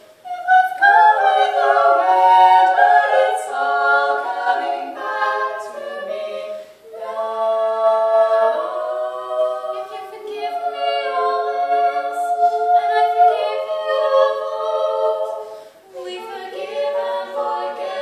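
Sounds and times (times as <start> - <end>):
women singing in harmony: 0.1 - 18.0.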